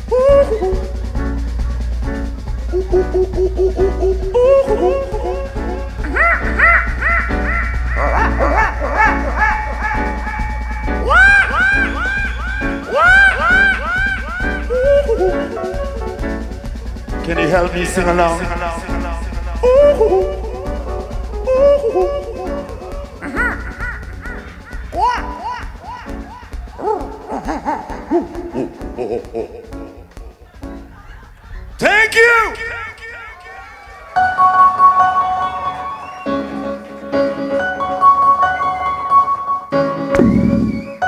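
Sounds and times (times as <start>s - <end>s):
singer vocal yelps: 0.0s - 1.0s, 2.7s - 16.2s, 17.4s - 29.8s, 31.1s - 34.4s
reggae band playing: 0.0s - 41.0s.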